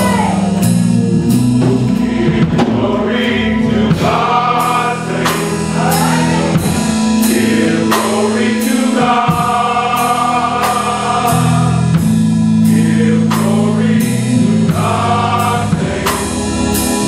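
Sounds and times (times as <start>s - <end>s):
held bass notes: 0.0s - 17.0s
men's choir singing in harmony: 0.0s - 17.0s
steady beat: 0.0s - 17.0s.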